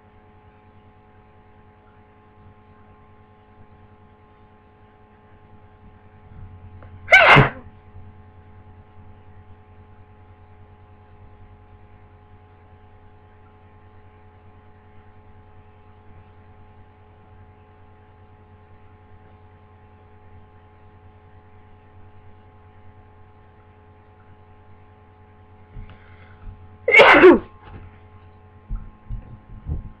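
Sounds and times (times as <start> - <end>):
electrical hum: 0.0 - 30.0
person sneezing: 7.1 - 7.6, 26.9 - 27.6
soft bumps: 28.7 - 30.0.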